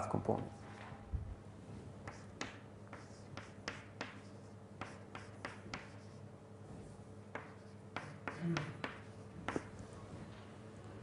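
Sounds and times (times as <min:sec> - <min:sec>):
chalk scratching on board: 0:02.0 - 0:06.2, 0:07.4 - 0:09.8.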